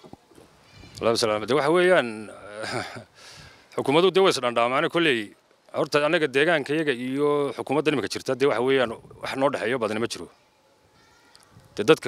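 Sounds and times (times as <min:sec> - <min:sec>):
man speaking: 0:01.0 - 0:03.1, 0:03.7 - 0:10.3, 0:11.8 - 0:12.0.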